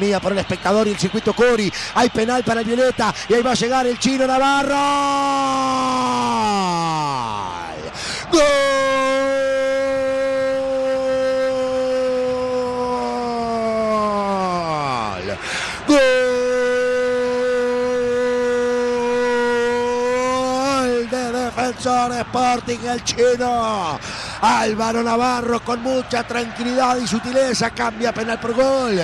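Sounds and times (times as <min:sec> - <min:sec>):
commentator's held goal cry: 0:00.2 - 0:29.0
quick gasp: 0:01.7 - 0:01.9, 0:08.0 - 0:08.3, 0:15.4 - 0:15.8, 0:24.0 - 0:24.4.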